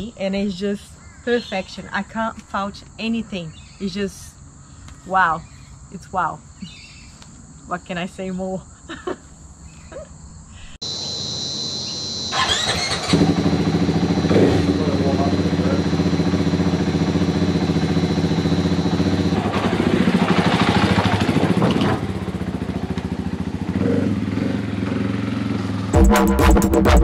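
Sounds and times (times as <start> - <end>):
insect buzz: 0.0 - 21.3
dirt bike engine revving: 11.2 - 27.0.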